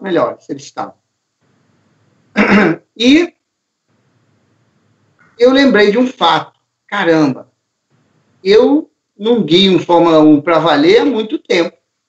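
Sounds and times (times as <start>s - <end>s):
man clearing his throat: 2.3s - 2.9s.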